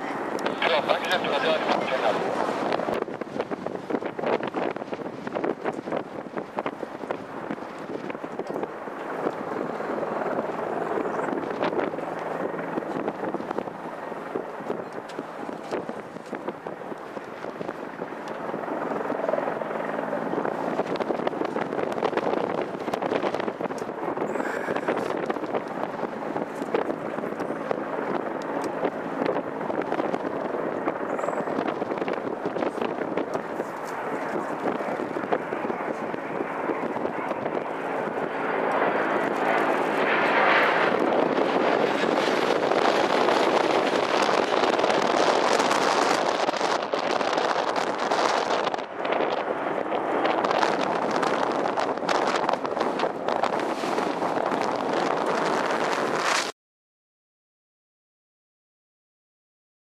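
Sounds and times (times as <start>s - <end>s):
jet engines landing: 0.0s - 56.5s.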